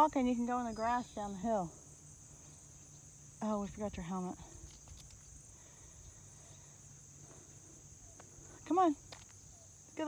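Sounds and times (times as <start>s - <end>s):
insects chirping: 0.0s - 10.0s.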